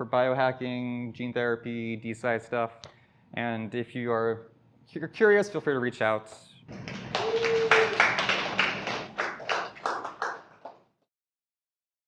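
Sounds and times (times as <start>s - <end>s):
audience applauding: 6.7s - 10.8s.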